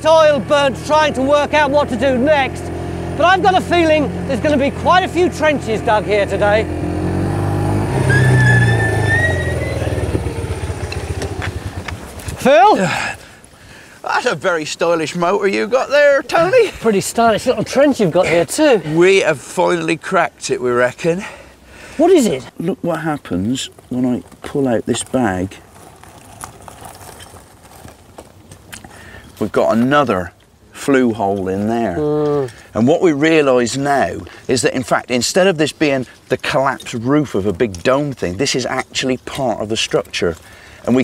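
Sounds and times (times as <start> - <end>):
quad bike engine slowing down: 0.1 - 13.1.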